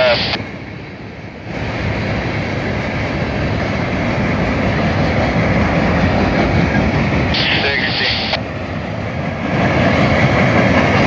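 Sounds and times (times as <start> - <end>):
freight train wheels rumbling on rails: 0.0 - 11.0.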